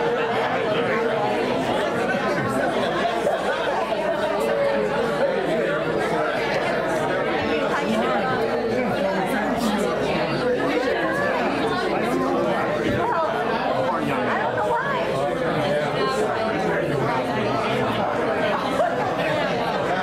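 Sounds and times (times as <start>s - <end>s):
crowd chatter in large room: 0.0s - 20.0s.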